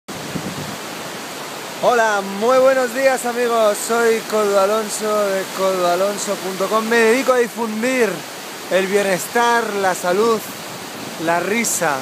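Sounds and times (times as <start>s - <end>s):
river rushing over rapids: 0.1s - 12.0s
man speaking: 1.8s - 10.5s, 11.2s - 12.0s.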